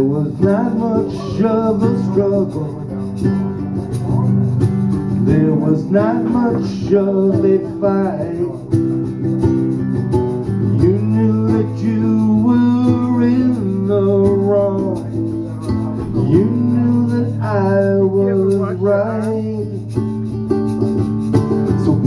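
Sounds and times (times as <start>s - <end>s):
guitar strumming chords: 0.0s - 22.0s
hand shaker: 0.0s - 22.0s.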